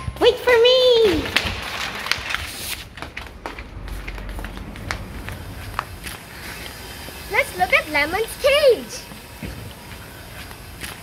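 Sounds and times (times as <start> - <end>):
footsteps on paved path: 0.3 - 11.0
low rumble: 1.2 - 6.4.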